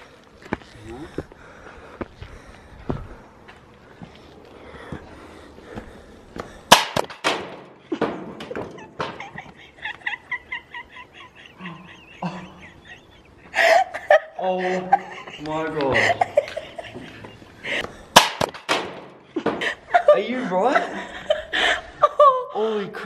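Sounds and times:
footsteps on dirt: 0:00.0 - 0:06.6
person laughing: 0:07.8 - 0:17.9, 0:19.3 - 0:22.8.

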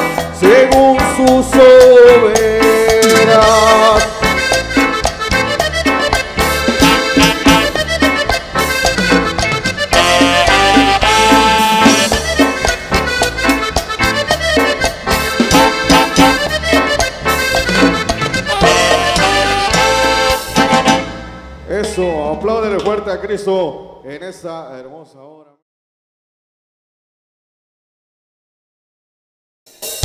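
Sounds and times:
steady percussion beat: 0:00.0 - 0:23.2
melodic lead instrument: 0:00.0 - 0:23.4
bass: 0:00.0 - 0:24.7.

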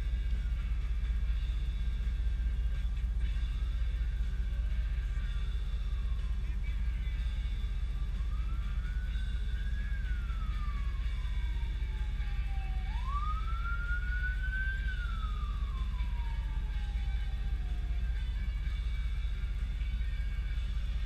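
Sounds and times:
truck engine idling: 0:00.0 - 0:21.0
distant siren wailing: 0:04.6 - 0:21.0.

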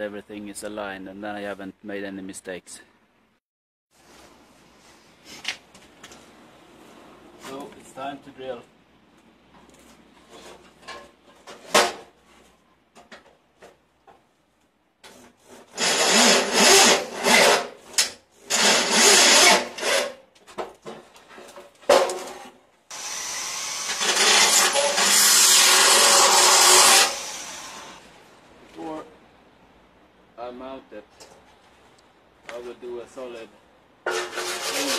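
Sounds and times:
electric drill boring steel: 0:15.8 - 0:17.4, 0:18.5 - 0:20.1, 0:22.9 - 0:28.0.

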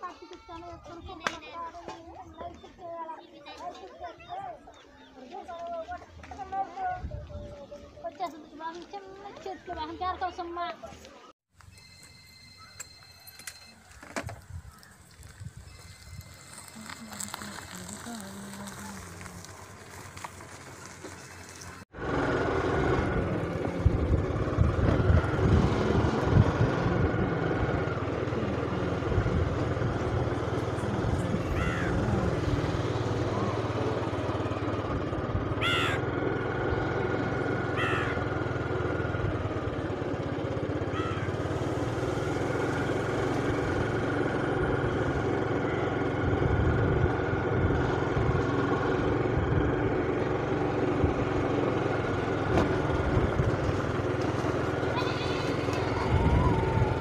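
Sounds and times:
wind rumble on microphone: 0:06.9 - 0:07.7, 0:23.0 - 0:27.5, 0:46.2 - 0:48.4, 0:55.9 - 0:57.0
motor scooter engine running: 0:11.6 - 0:57.0.

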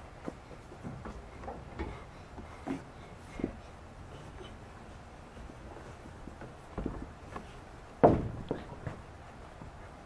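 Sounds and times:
knocks on wooden frame: 0:08.0 - 0:09.0.

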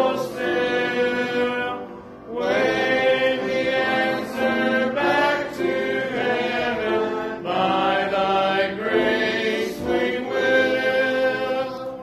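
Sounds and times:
man and congregation singing hymn: 0:00.0 - 0:12.0.

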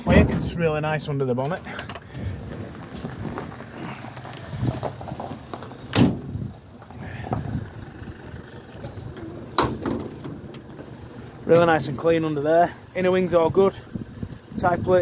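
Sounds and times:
handling and movement noise: 0:01.4 - 0:12.2
car door shutting thud: 0:05.9 - 0:06.4.

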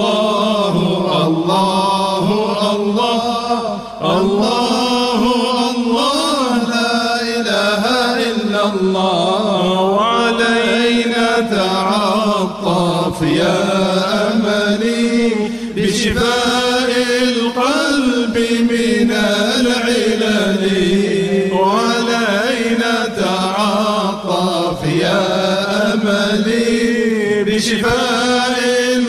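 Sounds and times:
voices chanting over a drone: 0:00.0 - 0:29.0.

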